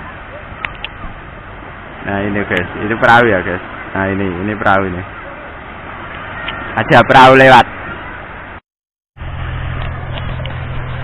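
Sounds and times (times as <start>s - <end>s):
waves breaking on shore: 0.0s - 8.6s.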